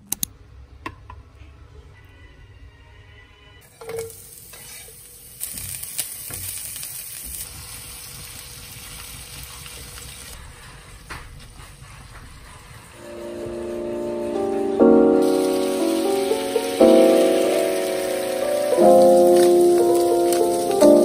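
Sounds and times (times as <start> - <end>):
food sizzling in a frying pan: 3.6 - 10.4, 15.1 - 21.0.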